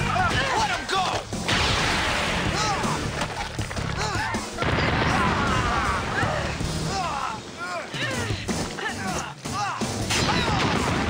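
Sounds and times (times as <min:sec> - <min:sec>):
background music: 0:00.0 - 0:11.0
dense crashing noise: 0:04.6 - 0:06.8.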